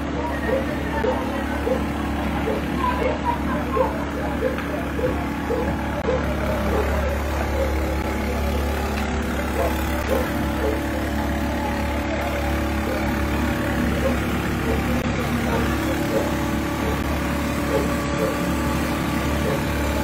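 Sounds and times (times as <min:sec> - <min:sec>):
engine humming at idle: 0:00.0 - 0:20.0
indistinct voices: 0:00.0 - 0:20.0.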